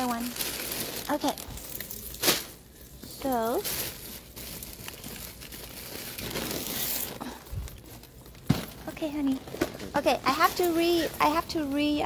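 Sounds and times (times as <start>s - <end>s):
plastic bags rustling: 0.0s - 12.0s.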